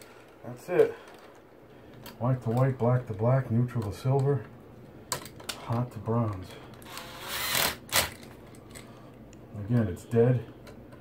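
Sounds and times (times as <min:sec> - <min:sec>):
cordless driver spinning: 0:06.8 - 0:08.2.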